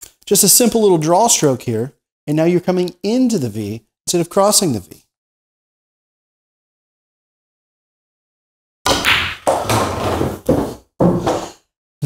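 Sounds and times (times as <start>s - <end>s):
cue striking ball: 8.9s - 11.5s
ball rolling through ball return: 8.9s - 11.6s
pool balls clacking: 8.9s - 11.6s.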